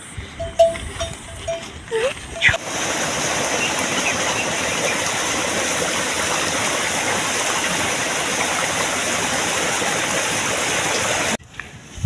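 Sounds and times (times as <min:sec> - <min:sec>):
livestock bell clinking: 0:00.3 - 0:02.5.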